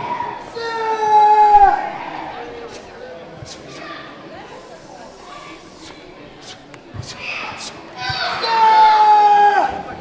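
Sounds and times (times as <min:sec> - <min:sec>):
faint voices in a large hall: 0:00.0 - 0:10.0.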